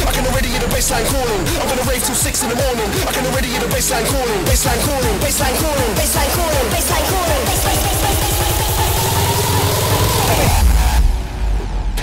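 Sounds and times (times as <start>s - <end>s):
rapid kick drum roll: 0.0s - 9.3s.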